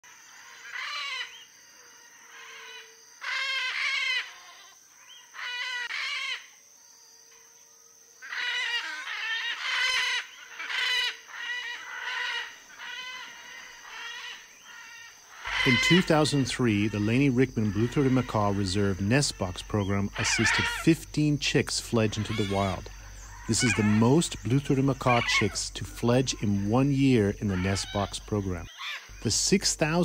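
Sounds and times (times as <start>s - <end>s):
macaws squawking: 0.4s - 1.4s, 2.3s - 6.5s, 8.2s - 30.0s.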